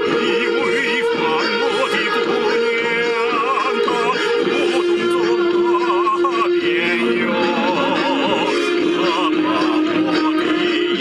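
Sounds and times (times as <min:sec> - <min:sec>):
person singing with vibrato: 0:00.0 - 0:11.0.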